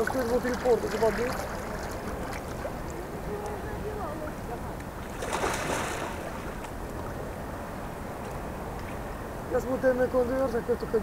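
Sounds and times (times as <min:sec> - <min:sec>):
faint distant voices: 0:00.0 - 0:08.0
wind rumbling on microphone: 0:00.0 - 0:11.0.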